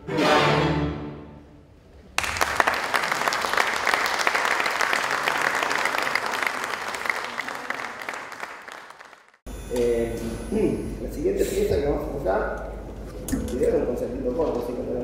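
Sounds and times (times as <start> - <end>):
audience applauding: 2.2 - 9.4.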